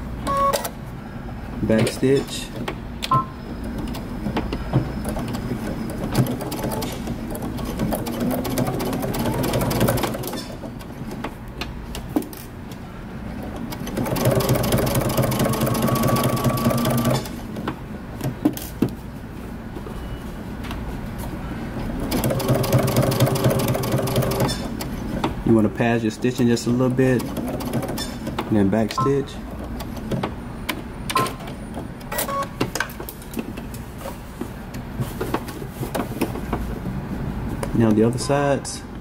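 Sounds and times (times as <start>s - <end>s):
sewing machine stitching: 5.0s - 10.8s, 13.6s - 17.4s, 22.0s - 24.8s, 26.9s - 28.4s.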